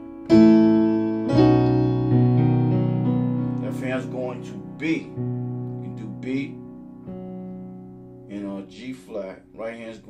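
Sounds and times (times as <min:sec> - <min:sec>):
piano chords ringing: 0:00.0 - 0:10.0
person speaking: 0:03.6 - 0:06.7, 0:08.2 - 0:10.0.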